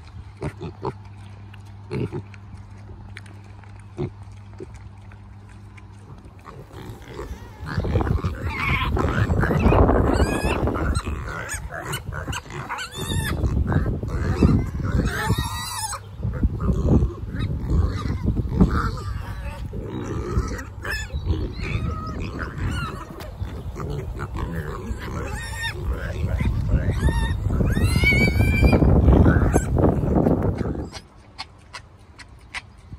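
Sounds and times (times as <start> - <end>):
piglets grunting: 0.0 - 32.9
piglets squealing: 6.2 - 31.8.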